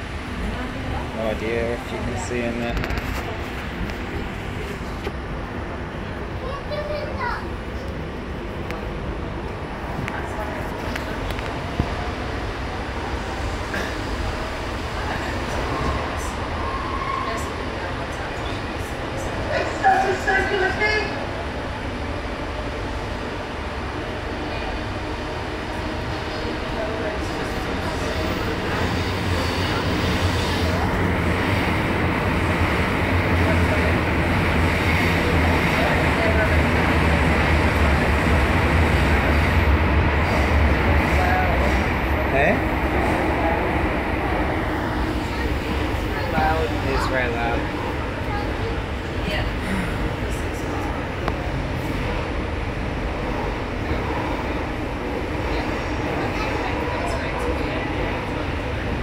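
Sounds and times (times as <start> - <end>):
train rumble inside carriage: 0.0 - 59.0.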